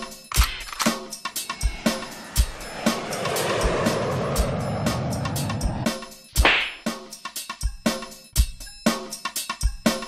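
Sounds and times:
broad noise swell: 1.4 - 6.0
sharp whoosh effect: 1.4 - 6.2.

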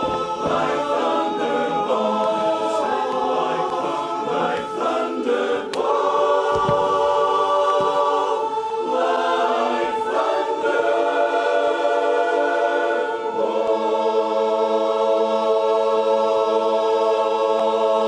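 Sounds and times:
male chorus singing a cappella: 0.0 - 18.0.

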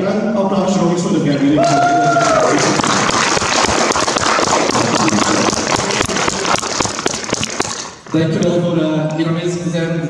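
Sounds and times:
audience applauding: 1.6 - 8.0.

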